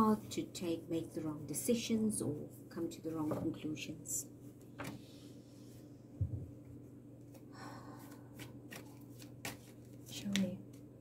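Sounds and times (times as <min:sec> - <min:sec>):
cards rustling: 0:08.1 - 0:10.8.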